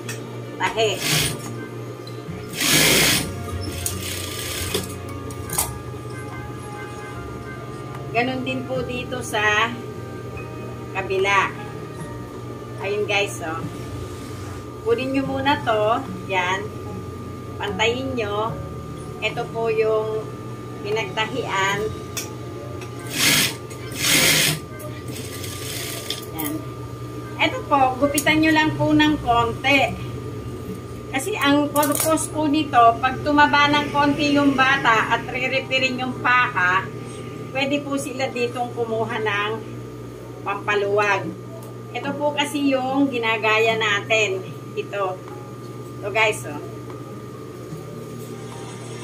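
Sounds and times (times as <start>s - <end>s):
background music: 0.0s - 40.1s
low motor hum: 0.0s - 40.5s
sewing machine stitching: 1.0s - 1.5s, 2.5s - 4.9s, 23.1s - 26.2s.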